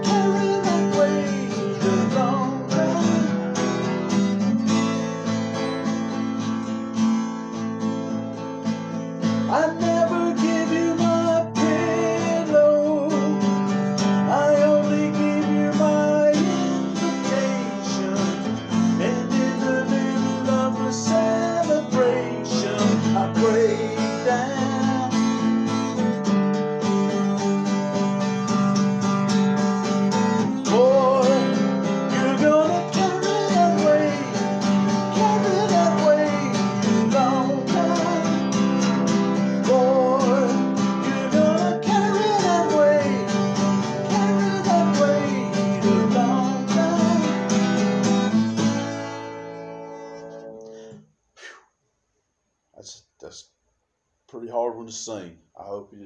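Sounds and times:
man singing: 0.0 - 3.4, 9.4 - 26.2, 29.9 - 48.4
strummed acoustic guitar: 0.0 - 51.1.

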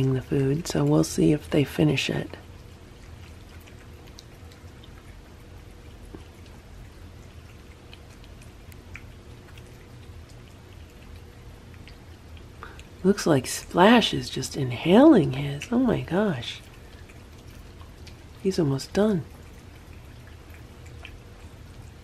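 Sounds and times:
cats chewing and licking: 0.0 - 22.0
steady low hum: 0.0 - 22.0.

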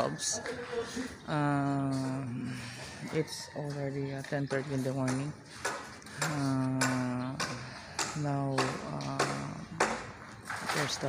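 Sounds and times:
person narrating: 6.2 - 9.7.

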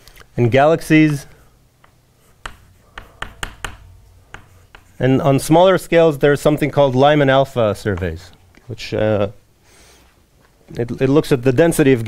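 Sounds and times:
chalk tapping on blackboard: 1.8 - 5.2.

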